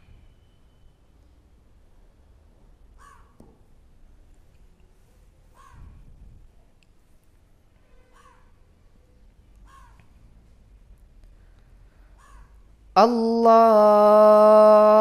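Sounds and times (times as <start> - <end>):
crow cawing: 3.0 - 3.4, 8.2 - 8.5, 9.6 - 10.0.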